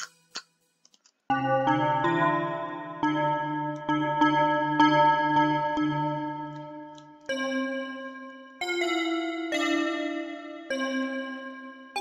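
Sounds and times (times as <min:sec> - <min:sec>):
bell-like synthesizer chord: 0:01.3 - 0:12.0.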